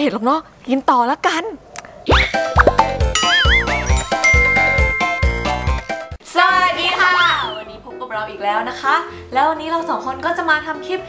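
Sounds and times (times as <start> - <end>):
cheerful intro jingle: 2.6 - 6.2.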